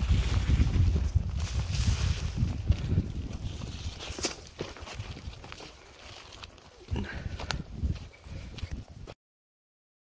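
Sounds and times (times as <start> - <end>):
footsteps on sandy track: 0.0 - 9.2.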